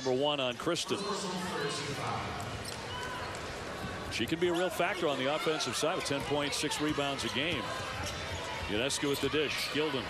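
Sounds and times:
arena crowd noise: 0.0s - 10.0s
sneaker squeaks: 2.5s - 4.8s, 7.2s - 9.9s.

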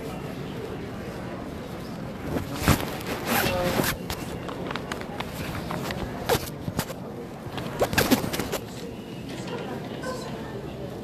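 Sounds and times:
clothing rustling against microphone: 1.0s - 8.8s.

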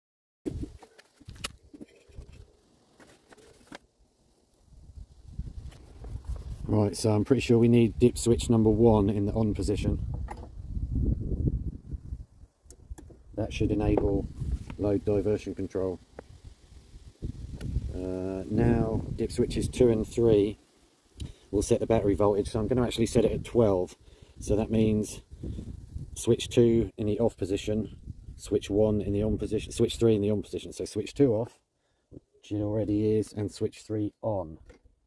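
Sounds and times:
low rustle: 0.5s - 7.9s, 13.4s - 26.2s
low wind rumble on microphone: 4.6s - 20.6s, 21.7s - 30.1s
sharp clicks and knocks: 10.1s - 10.5s, 12.7s - 13.2s.

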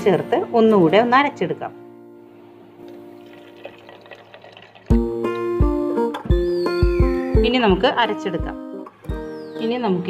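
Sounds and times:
liquid pouring into blender jar: 2.8s - 5.0s
music with plucked guitar and bass: 4.9s - 10.0s.

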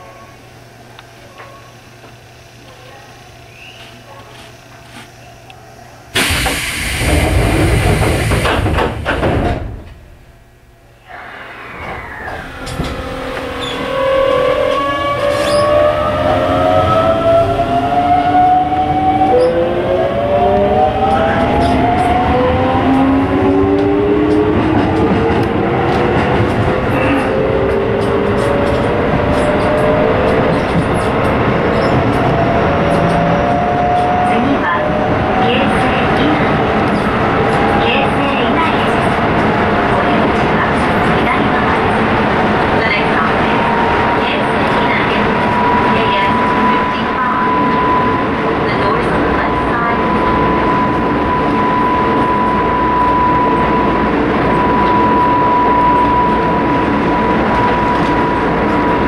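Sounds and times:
loud rush of noise: 6.2s - 9.3s, 10.9s - 17.6s
electric train motors whining: 11.0s - 36.0s.

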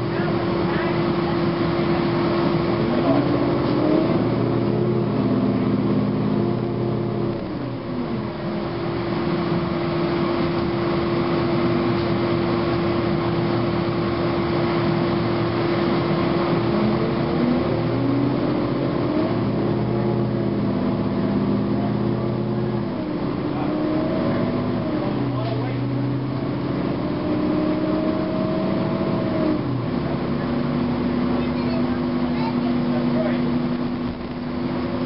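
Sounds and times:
bus diesel engine running: 0.0s - 35.0s
road noise: 0.0s - 35.0s
transmission whining: 0.0s - 35.0s.

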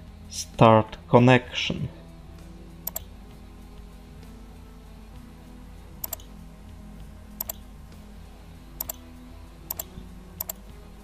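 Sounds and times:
mouse button double clicks: 6.0s - 6.3s, 7.4s - 7.6s, 8.8s - 9.0s, 9.7s - 10.6s.

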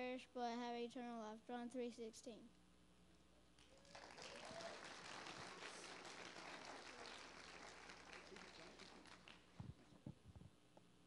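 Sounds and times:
crowd clapping: 3.6s - 9.6s.

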